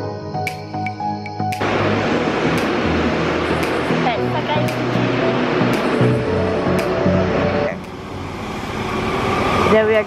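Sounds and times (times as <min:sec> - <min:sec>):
subway train rushing: 0:01.6 - 0:10.0.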